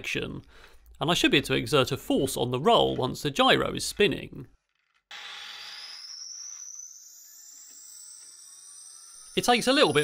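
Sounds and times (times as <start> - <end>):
motor whine rising: 5.1 - 10.0.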